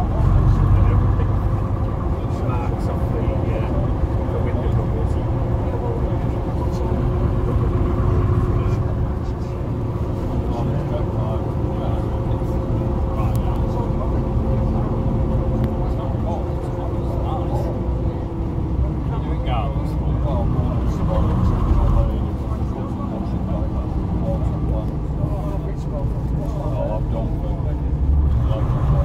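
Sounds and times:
bus engine rumble and whine: 0.0 - 29.0
passengers chatting: 0.0 - 29.0.

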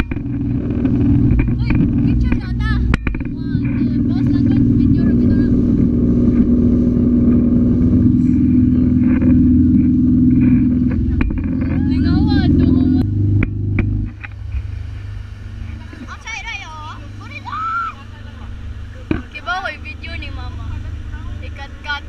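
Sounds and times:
motorboat engine running: 0.0 - 22.0
people talking: 1.5 - 5.6, 8.0 - 9.4, 10.9 - 13.1, 15.8 - 22.0.

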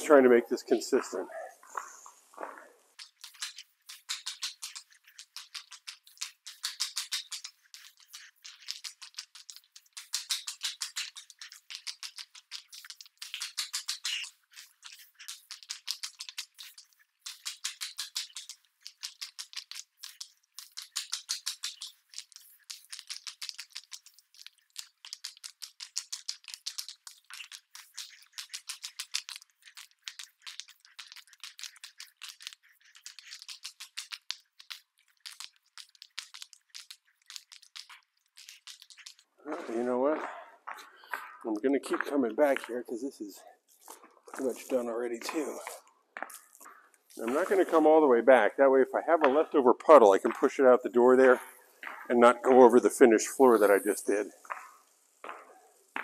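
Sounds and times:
wet epoxy crackling under roller: 0.8 - 56.0.

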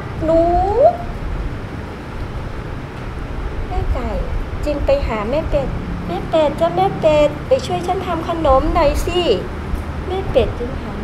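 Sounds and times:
low background rumble: 0.0 - 11.0
woman speaking: 0.2 - 1.1, 3.7 - 9.5, 10.1 - 11.0.

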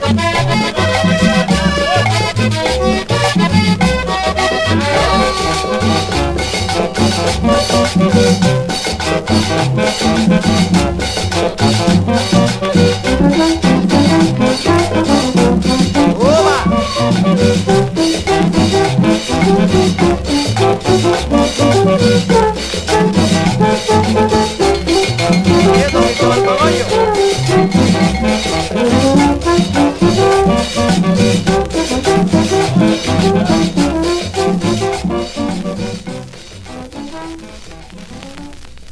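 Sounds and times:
button accordion melody: 0.1 - 8.4, 23.9 - 31.0
steady percussion beat: 0.7 - 36.1
repeating bass line: 4.2 - 8.7, 23.6 - 27.5.

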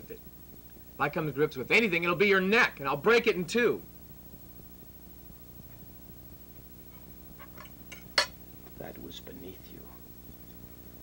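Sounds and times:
glass clinking on table: 7.6 - 8.4.

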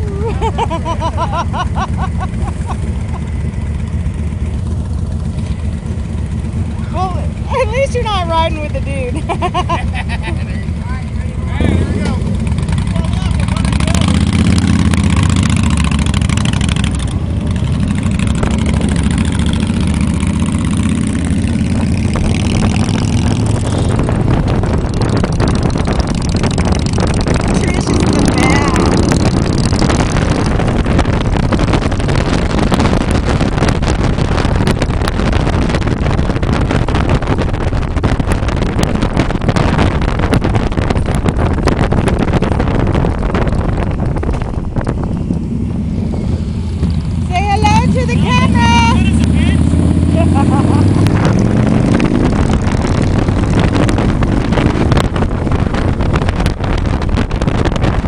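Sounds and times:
motorcycle engine running: 0.0 - 58.0
wind on microphone: 18.1 - 58.0.

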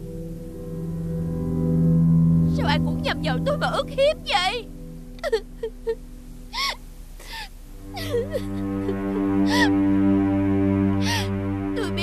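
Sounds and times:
low droning background music: 0.0 - 12.0
woman sobbing: 5.2 - 9.9.

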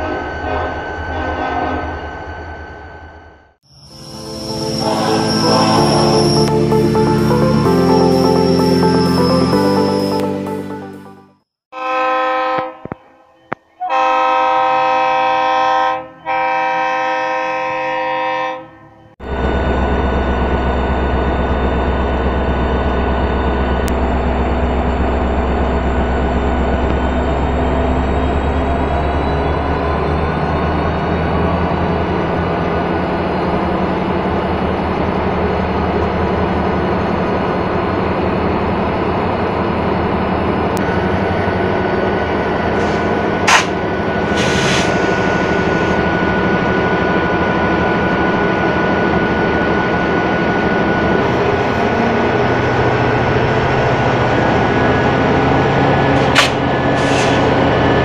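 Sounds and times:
diesel locomotive running: 0.0 - 11.2, 13.9 - 58.0
locomotive air horn blasts: 11.7 - 18.9.

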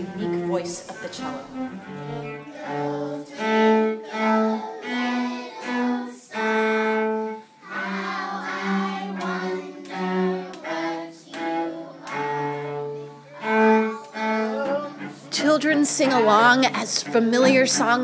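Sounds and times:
bowed cello melody: 0.0 - 18.0.

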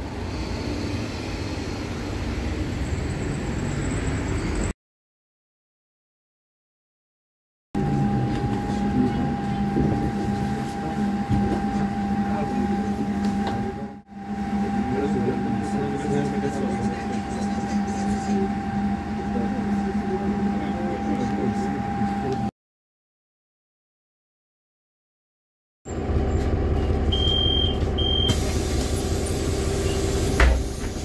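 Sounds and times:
low hum inside bus: 7.8 - 22.5, 25.9 - 31.0.

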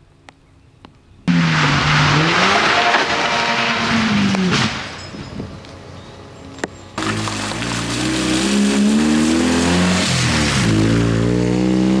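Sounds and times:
tyres hissing on wet road: 7.0 - 11.3.

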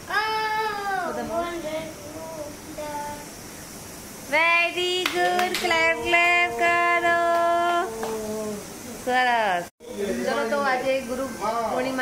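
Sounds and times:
child singing: 4.8 - 8.3
second voice singing: 4.8 - 8.7
hand claps: 5.0 - 6.4, 7.3 - 8.4.

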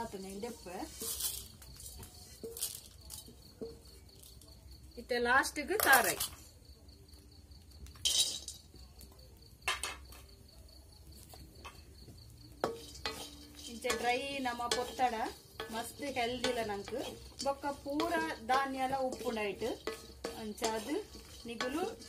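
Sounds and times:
metal pan clinks and knocks: 8.0 - 8.7, 9.6 - 10.2, 12.5 - 22.0.

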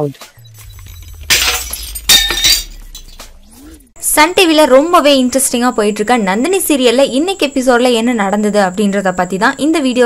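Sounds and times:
low steady drone: 0.4 - 5.4
glass shattering: 0.5 - 3.8.

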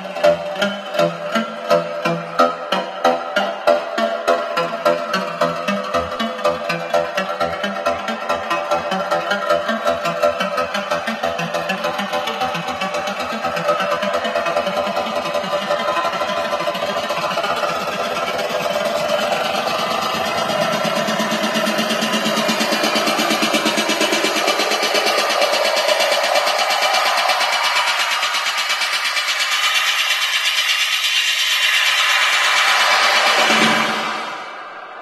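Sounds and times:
techno music over sound system: 0.0 - 35.0.

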